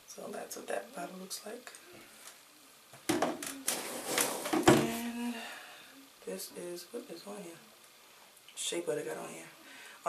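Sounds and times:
bottles rustling and knocking: 3.0 - 5.0.

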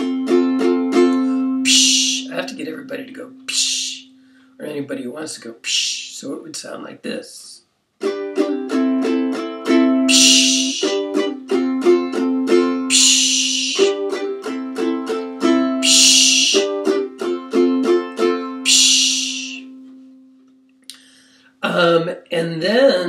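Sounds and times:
ukulele strumming chords: 0.0 - 4.4, 8.0 - 20.7
vocal psh hiss: 1.6 - 2.4, 3.5 - 4.1, 5.6 - 6.3, 10.1 - 11.1, 12.9 - 14.0, 15.8 - 16.8, 18.7 - 19.7.

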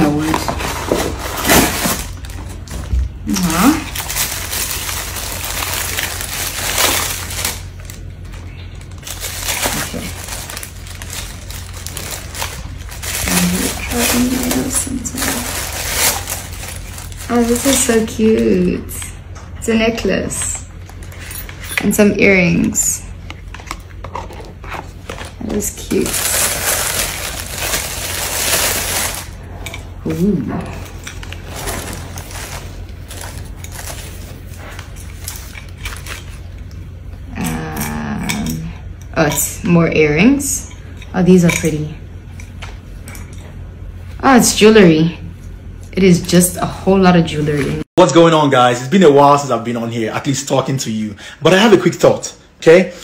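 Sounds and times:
packaging crinkling and rustling: 0.0 - 18.6, 23.2 - 29.4, 30.7 - 36.8.

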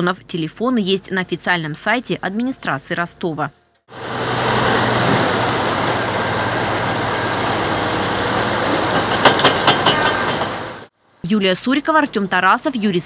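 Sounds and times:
diesel engine running: 3.9 - 10.9.

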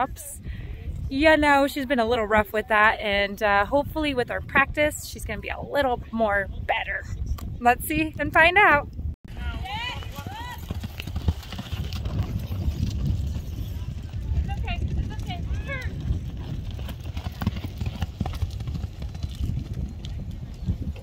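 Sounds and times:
horse hoofbeats on dirt: 9.3 - 21.0.

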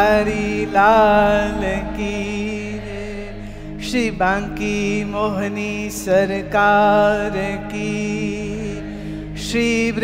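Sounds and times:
instrumental drone: 0.0 - 10.0.

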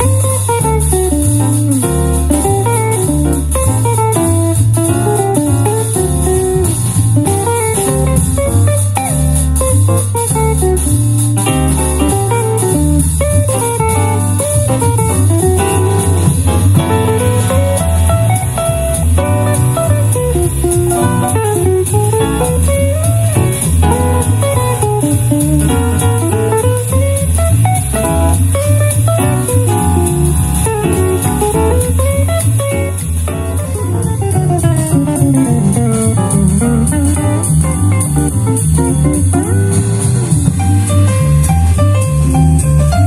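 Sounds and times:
instrumental guitar music: 0.0 - 43.0.

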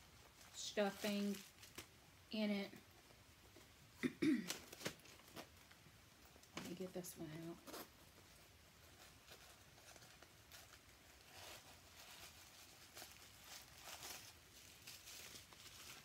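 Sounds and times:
rustling and crinkling: 0.0 - 16.0.

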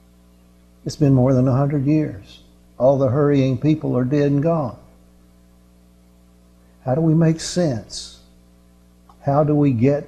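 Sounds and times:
electrical mains hum: 0.0 - 10.0
man speaking: 0.9 - 4.9, 6.8 - 8.3, 9.2 - 10.0.

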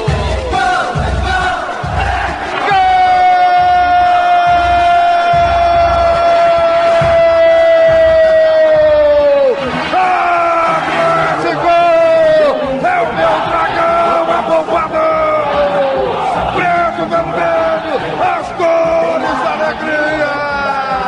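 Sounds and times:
steady low beat: 0.0 - 9.2
commentator's drawn-out goal cry: 0.1 - 21.0.

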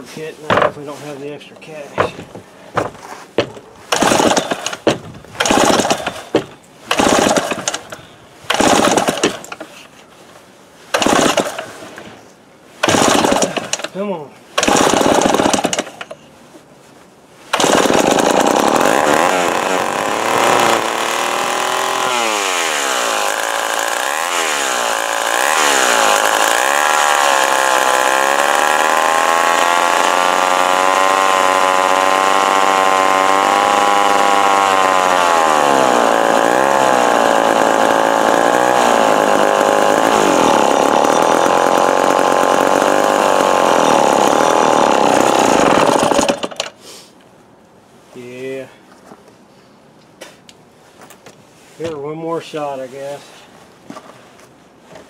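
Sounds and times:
chainsaw engine surging: 2.0 - 9.6, 10.9 - 11.8, 12.8 - 14.0, 14.6 - 16.2, 17.5 - 46.7.

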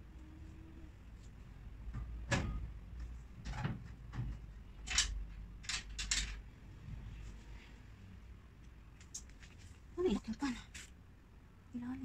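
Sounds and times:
knocks of cabinet assembly: 2.0 - 2.6.

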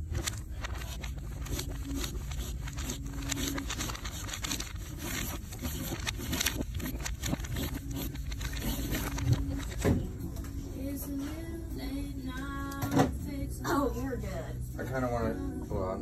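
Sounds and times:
pen scratching on paper: 0.1 - 10.0.

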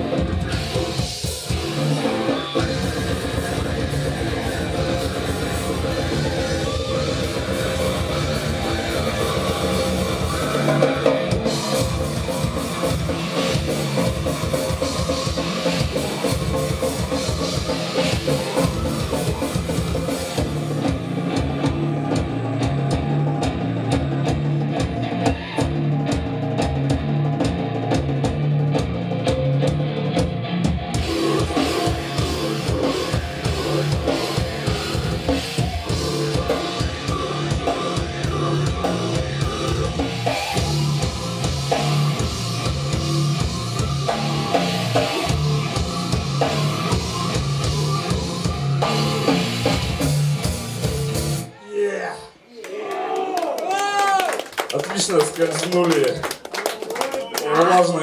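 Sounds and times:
electric guitar low riff: 0.0 - 51.5
fast loud grind band: 0.0 - 51.5
rapid bass drum: 0.0 - 51.5.

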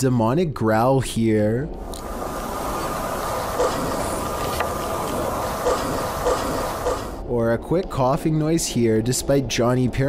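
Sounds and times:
steady noisy drone with hiss: 1.8 - 7.3.

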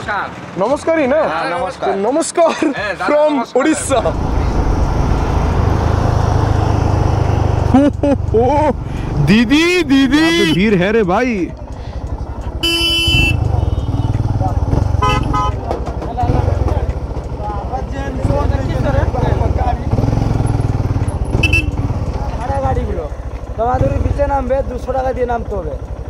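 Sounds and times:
motorcycle engine throbbing: 3.8 - 26.0
people's voices: 7.6 - 20.3
vehicle horn toots: 10.2 - 10.8, 12.6 - 15.7, 21.3 - 21.9.

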